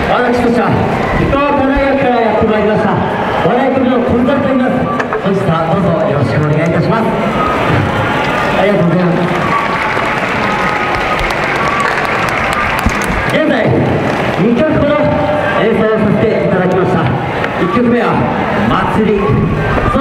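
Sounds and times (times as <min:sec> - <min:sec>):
man speaking over a microphone: 0:00.0 - 0:07.3, 0:08.6 - 0:09.5, 0:13.3 - 0:20.0
audience applause: 0:07.0 - 0:15.6.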